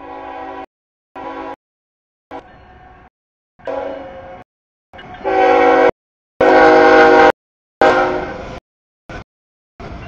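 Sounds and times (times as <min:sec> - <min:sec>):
train air horn blasts: 0:00.0 - 0:01.6, 0:03.6 - 0:04.4, 0:05.2 - 0:08.6.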